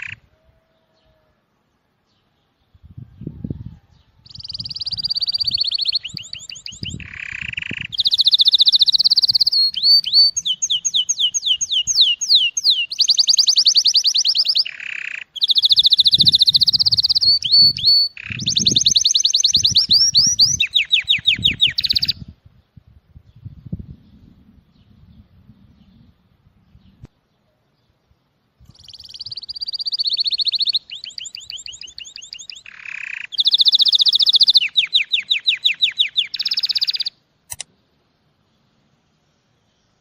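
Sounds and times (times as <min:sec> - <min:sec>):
canary singing trills: 0:00.0 - 0:01.3, 0:02.4 - 0:22.3, 0:28.6 - 0:37.2.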